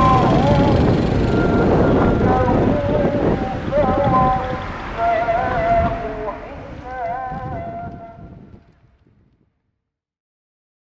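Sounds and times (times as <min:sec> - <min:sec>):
person chanting long wavering notes: 0:00.0 - 0:08.3
low background rumble: 0:00.0 - 0:08.8.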